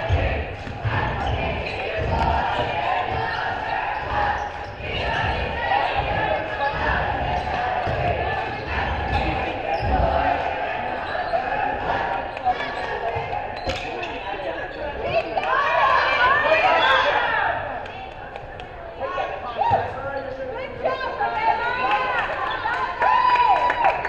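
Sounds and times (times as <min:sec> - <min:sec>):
indistinct voices: 0:00.0 - 0:24.0
basketball bouncing on hardwood: 0:05.0 - 0:08.3.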